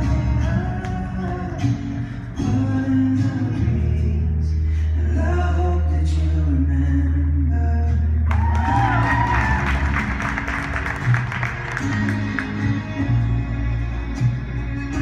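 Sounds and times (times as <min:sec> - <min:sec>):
audience cheering and clapping: 0:08.3 - 0:13.0.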